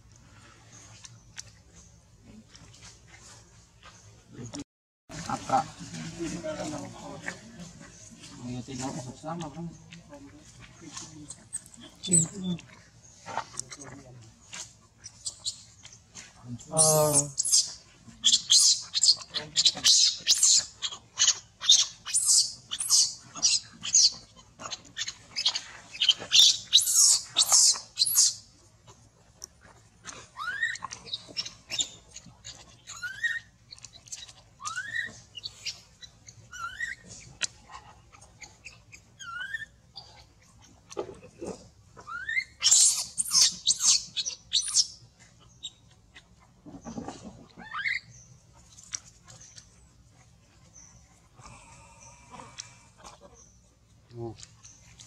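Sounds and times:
infant monkey shrieking: 0:16.8 - 0:28.4, 0:30.3 - 0:31.1, 0:34.6 - 0:35.2, 0:42.0 - 0:44.9, 0:47.6 - 0:48.0.

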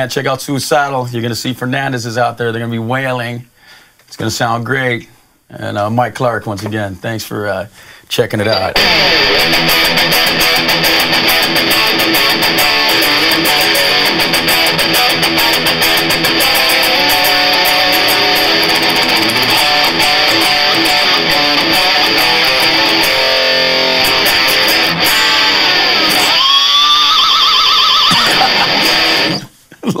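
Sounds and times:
distorted electric guitar: 0:08.5 - 0:29.6.

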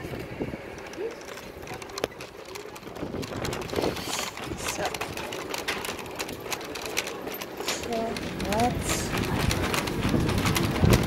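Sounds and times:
shopping cart rattling over paving: 0:00.0 - 0:11.0.

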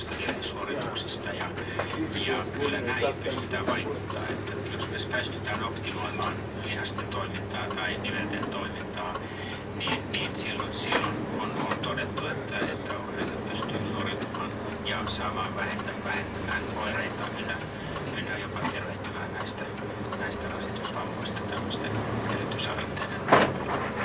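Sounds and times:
indistinct speech: 0:00.0 - 0:23.4
bus engine droning: 0:00.0 - 0:24.0.

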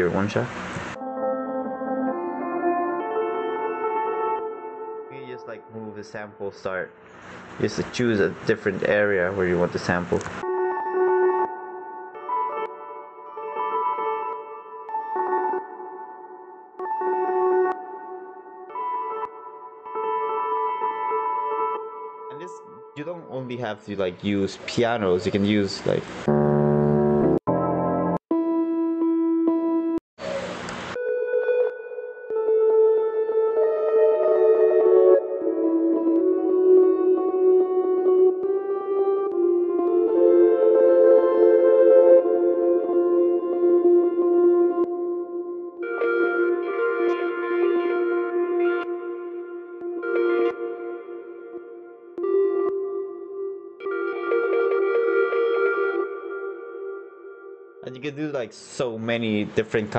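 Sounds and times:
ambient pad chords: 0:30.8 - 0:57.8.

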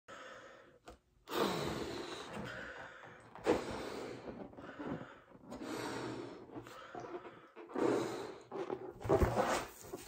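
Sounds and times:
blowing up balloon by mouth: 0:01.2 - 0:10.0.

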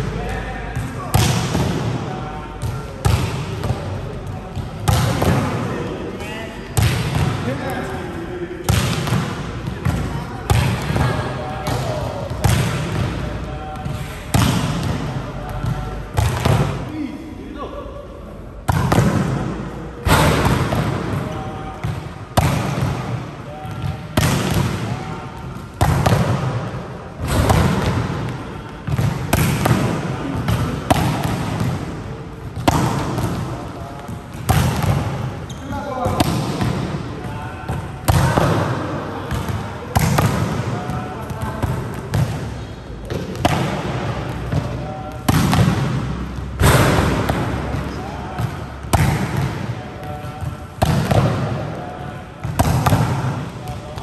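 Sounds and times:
players' voices: 0:00.0 - 0:54.0
volleyball smacking court floor: 0:00.8 - 0:02.0, 0:04.6 - 0:05.7, 0:08.6 - 0:13.2, 0:18.7 - 0:23.2, 0:23.9 - 0:37.1, 0:37.7 - 0:51.6, 0:52.4 - 0:54.0.

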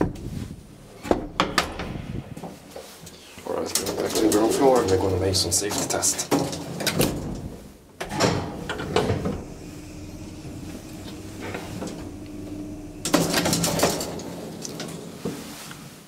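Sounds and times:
elevator motor hum: 0:08.0 - 0:15.2.

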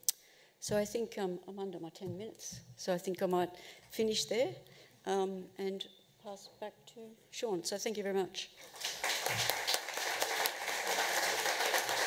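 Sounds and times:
large audience applauding: 0:08.6 - 0:12.0.

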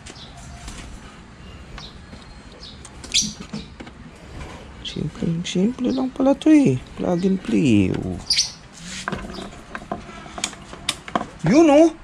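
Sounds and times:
low steady background hum: 0:00.0 - 0:12.0
high bird chirps: 0:01.4 - 0:03.8, 0:08.2 - 0:08.6.

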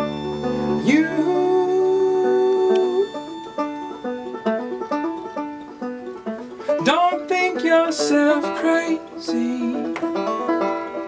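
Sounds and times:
low bowed string note: 0:00.0 - 0:07.2
quick plucked string notes: 0:00.0 - 0:11.0
sliding string note: 0:00.0 - 0:11.0.

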